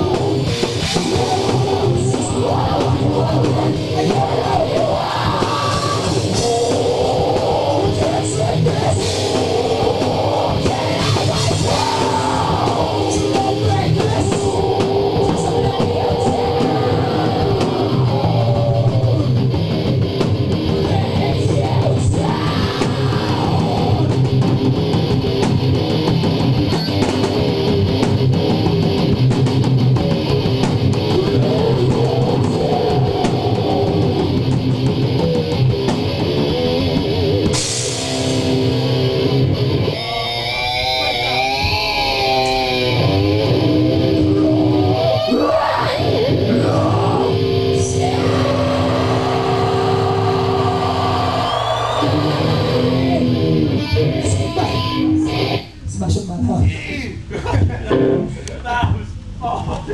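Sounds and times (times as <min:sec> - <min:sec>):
drum and cymbal hits: 0:00.0 - 0:39.2
heavy rock band playing: 0:00.0 - 0:55.8, 0:57.2 - 0:59.0
held guitar chords ringing: 0:22.9 - 0:45.2, 0:46.0 - 0:55.8, 0:57.9 - 0:58.4.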